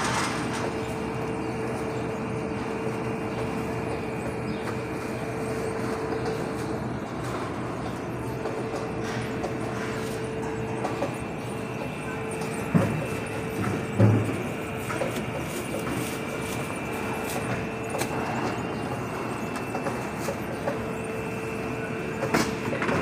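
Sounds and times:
conveyor and gear motors running: 0:00.0 - 0:23.0.

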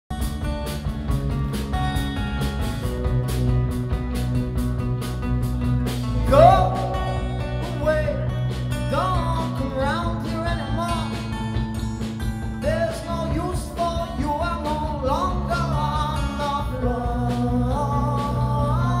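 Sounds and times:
electric guitar: 0:00.1 - 0:19.0
strummed acoustic guitar: 0:00.1 - 0:19.0
person singing: 0:06.2 - 0:11.3, 0:12.6 - 0:19.0.

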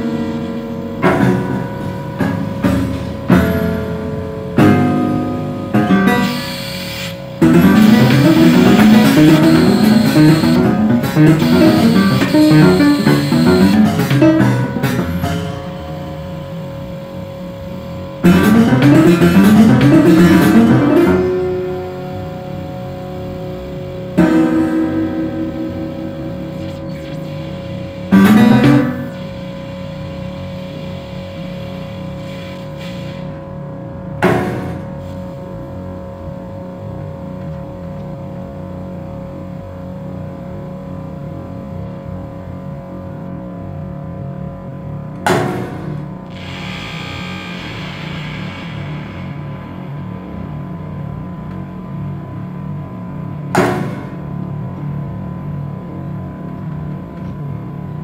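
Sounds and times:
steady electronic drone: 0:00.0 - 0:58.0
sharp struck notes ringing: 0:07.4 - 0:29.2.

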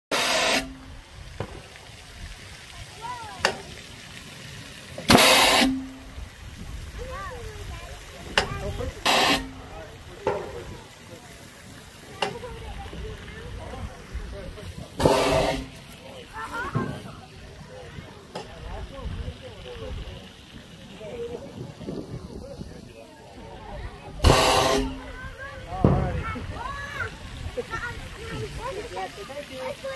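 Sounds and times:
air cannon blasts: 0:05.1 - 0:05.9, 0:24.2 - 0:25.1.

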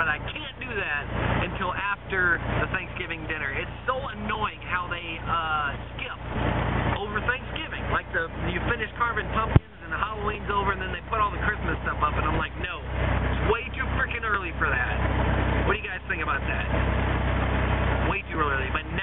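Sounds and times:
man talking: 0:00.0 - 0:06.3, 0:06.9 - 0:15.1, 0:15.7 - 0:16.8, 0:18.0 - 0:19.0
car engine and tyres droning: 0:00.0 - 0:19.0.

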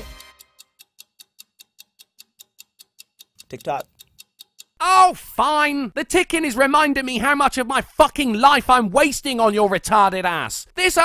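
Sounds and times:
clock ticking: 0:00.0 - 0:11.0
person speaking: 0:03.4 - 0:04.0, 0:04.8 - 0:11.0.

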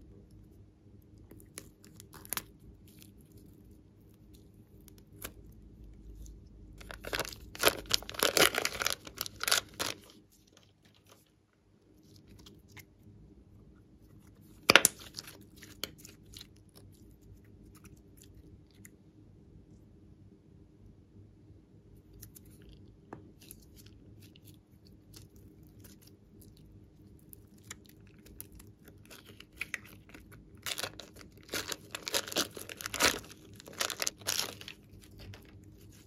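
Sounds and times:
slime squelching and popping: 0:06.2 - 0:11.2, 0:14.4 - 0:18.3, 0:22.2 - 0:36.0
scissors snipping plastic bag: 0:07.0 - 0:10.1, 0:30.6 - 0:35.5.

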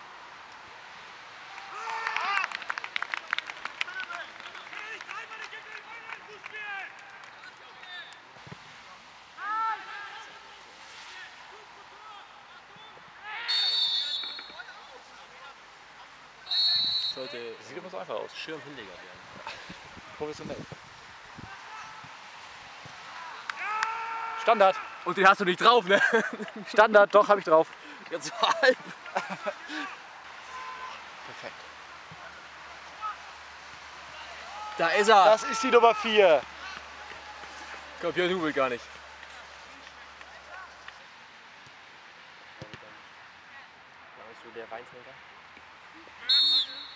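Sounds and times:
distant players' voices: 0:03.7 - 0:46.9.

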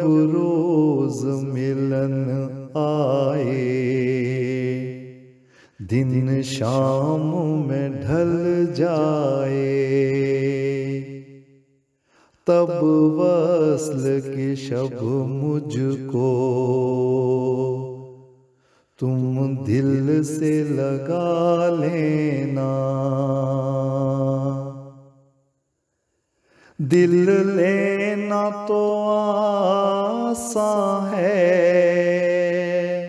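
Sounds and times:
man singing unaccompanied: 0:00.0 - 0:11.4, 0:12.4 - 0:18.3, 0:19.0 - 0:25.0, 0:26.8 - 0:33.0.

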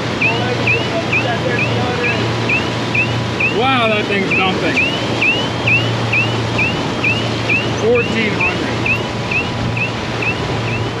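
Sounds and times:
outboard motors droning: 0:00.0 - 0:11.0
rush of boat wake: 0:00.0 - 0:11.0
fishing reel drag squealing: 0:00.2 - 0:10.9.

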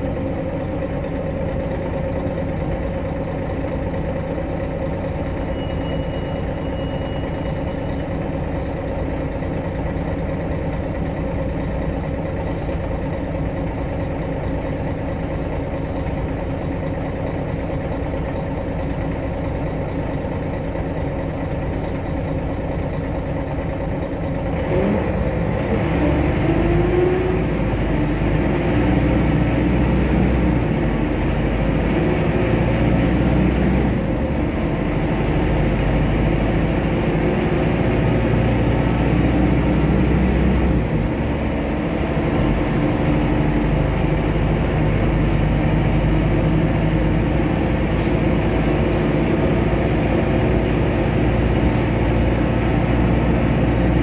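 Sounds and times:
bus engine humming: 0:00.0 - 0:54.0.

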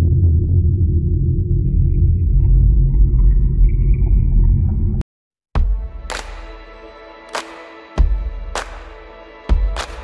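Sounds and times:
deep rumbling drone: 0:00.0 - 0:05.0.

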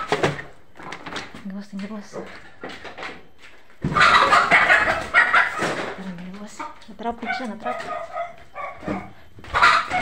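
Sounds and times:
chicken squawking in alarm: 0:03.9 - 0:05.8, 0:07.6 - 0:10.0.

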